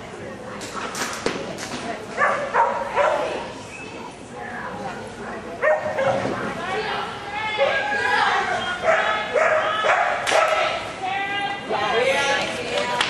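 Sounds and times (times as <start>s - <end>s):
people talking: 0.0s - 13.0s
dog barking: 2.2s - 3.3s, 5.6s - 6.2s, 8.8s - 10.7s.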